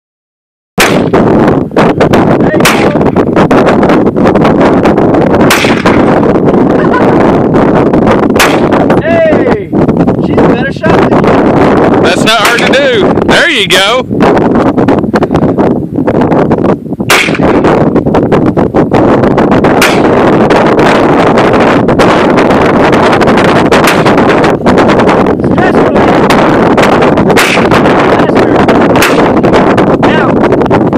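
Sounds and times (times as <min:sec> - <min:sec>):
rifle shots: 0:00.8 - 0:01.3, 0:02.5 - 0:03.1, 0:05.4 - 0:06.3, 0:08.4 - 0:08.9, 0:17.1 - 0:17.6, 0:19.8 - 0:20.3, 0:23.8 - 0:24.3, 0:27.4 - 0:28.0, 0:29.0 - 0:29.5
loud distorted noise: 0:00.8 - 0:30.9
wind noise on microphone: 0:00.8 - 0:30.9.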